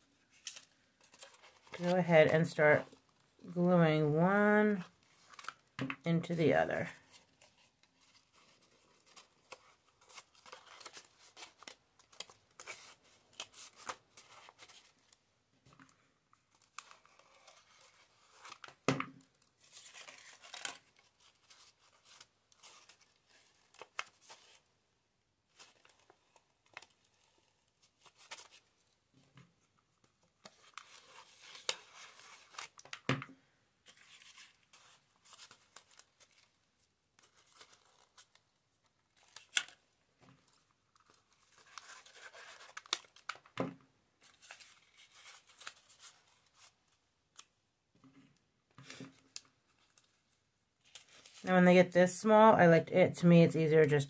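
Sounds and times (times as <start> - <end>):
paper rustling and crinkling: 0.2 - 3.4, 4.7 - 6.0, 6.8 - 24.7, 25.5 - 51.5.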